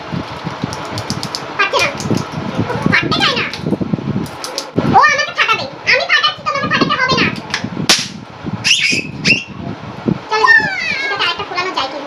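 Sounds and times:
voices: 0:01.6 - 0:03.8, 0:04.4 - 0:07.5, 0:08.7 - 0:12.0.

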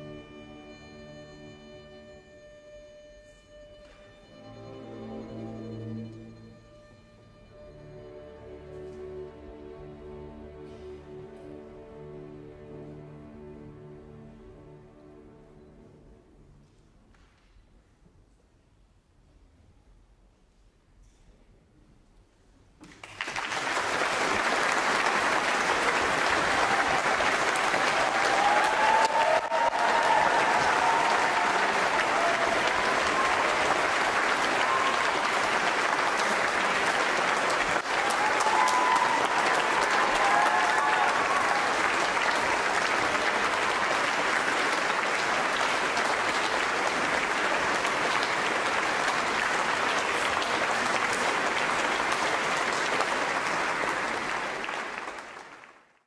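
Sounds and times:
large audience applauding: 0:22.8 - 0:56.0.

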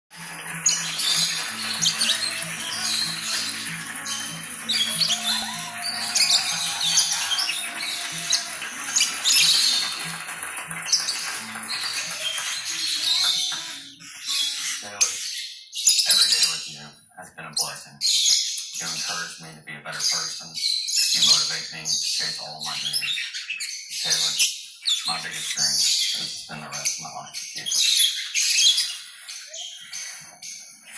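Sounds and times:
background music: 0:00.1 - 0:15.0
parrots chirping and squawking: 0:00.2 - 0:30.9.

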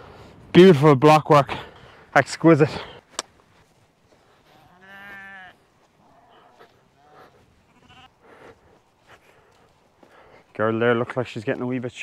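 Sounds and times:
sheep bleating: 0:04.5 - 0:08.4.

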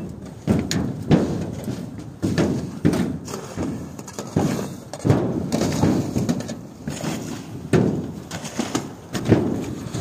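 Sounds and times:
shovels scraping snow and ice: 0:03.2 - 0:04.8, 0:05.5 - 0:07.6, 0:08.3 - 0:10.0.

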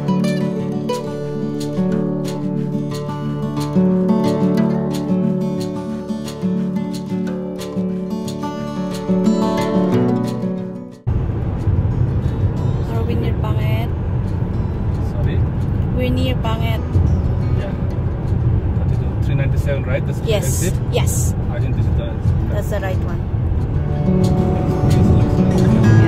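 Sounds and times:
acoustic guitar music: 0:00.0 - 0:26.0
car cabin road and engine rumble: 0:11.1 - 0:26.0
person speaking: 0:20.2 - 0:21.4.

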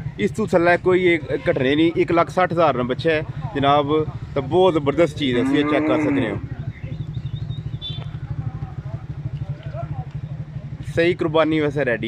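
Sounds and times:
small engine idling: 0:00.0 - 0:12.0
faint voices: 0:03.2 - 0:07.1.

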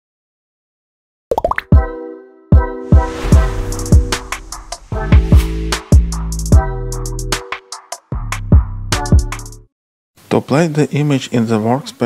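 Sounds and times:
low bass hit with chord: 0:03.0 - 0:07.1.

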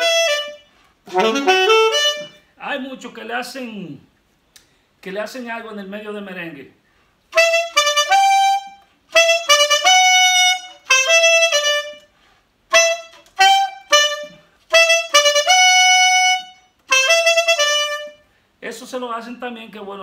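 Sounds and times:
alto saxophone playing runs: 0:00.0 - 0:02.5, 0:07.3 - 0:12.1, 0:12.7 - 0:18.3.

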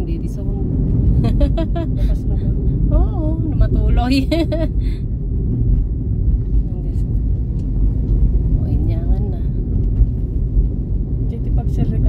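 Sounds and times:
people talking: 0:00.0 - 0:00.6, 0:01.2 - 0:04.7, 0:06.6 - 0:07.0, 0:08.6 - 0:09.5, 0:11.3 - 0:12.0
car engine and tyre rumble: 0:00.0 - 0:12.0
person laughing: 0:01.2 - 0:02.5, 0:04.1 - 0:05.0.

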